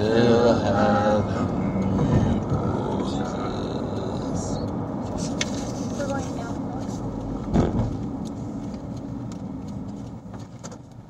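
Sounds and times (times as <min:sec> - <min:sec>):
car road and engine rumble: 0:00.0 - 0:11.0
thump: 0:07.5 - 0:07.9.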